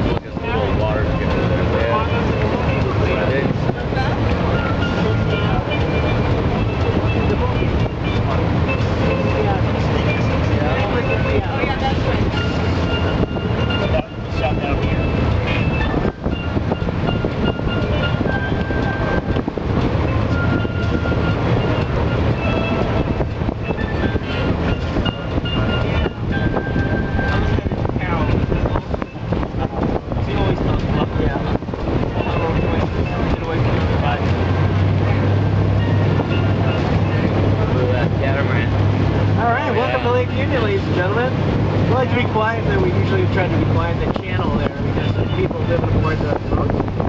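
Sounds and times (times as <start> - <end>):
boat engine low drone: 0.0 - 47.0
wind buffeting microphone: 0.0 - 47.0.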